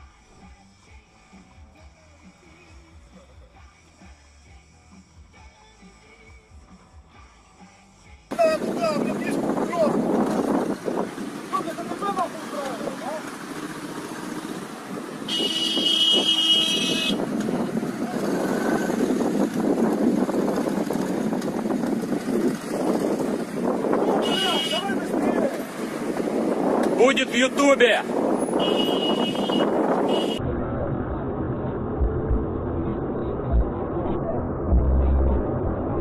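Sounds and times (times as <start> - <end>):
city road traffic: 0.0 - 36.0
car horn honking: 15.2 - 17.2, 24.0 - 25.2, 28.4 - 30.4.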